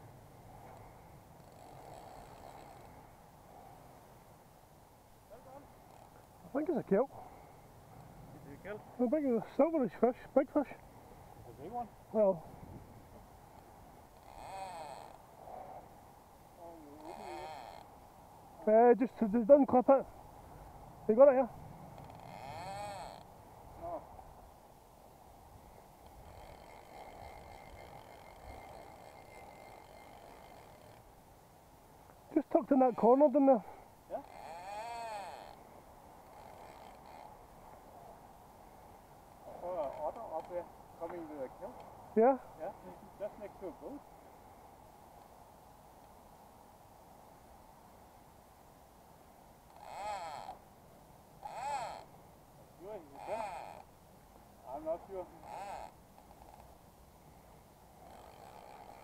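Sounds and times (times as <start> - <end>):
wind: 0.0 - 59.0.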